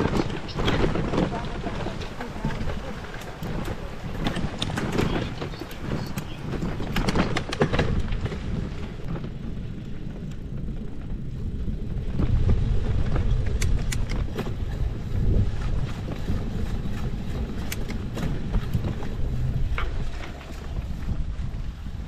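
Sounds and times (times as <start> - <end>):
bicycle tyres rumbling: 0.0 - 22.0
bike clicks and rattles: 0.0 - 22.0
wind on microphone: 0.0 - 22.0.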